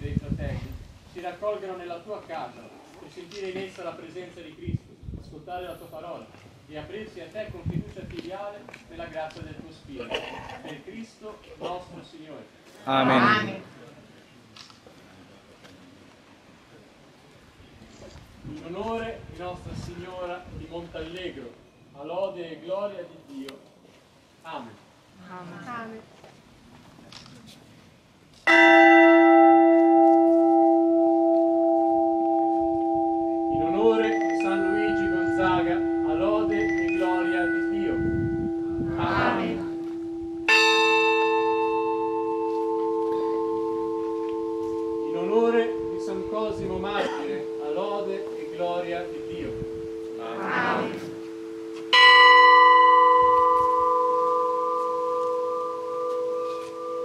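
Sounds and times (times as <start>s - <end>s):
church bell ringing: 28.5s - 57.0s
hum of earlier bell: 28.5s - 57.0s.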